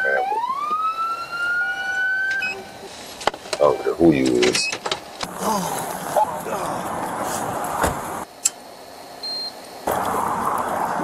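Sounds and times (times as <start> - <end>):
police siren wailing: 0.0 - 2.9.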